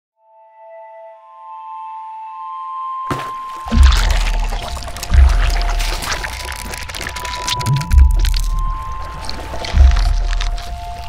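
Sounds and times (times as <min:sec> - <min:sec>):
music: 0:00.2 - 0:11.0
deep bass hits: 0:03.7 - 0:06.4, 0:07.8 - 0:10.9.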